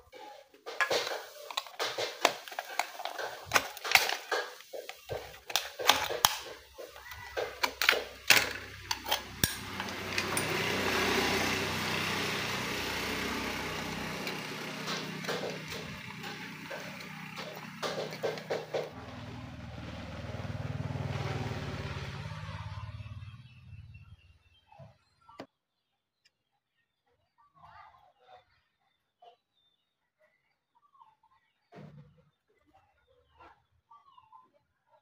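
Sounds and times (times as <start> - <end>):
metallic clicks and knocks of can: 0.7 - 10.6.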